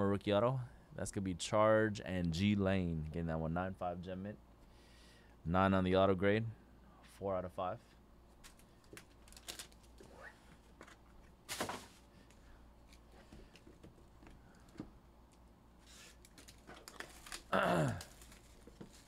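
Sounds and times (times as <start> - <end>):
plastic and cardboard handling: 15.8 - 19.0
person clearing throat: 17.5 - 18.2.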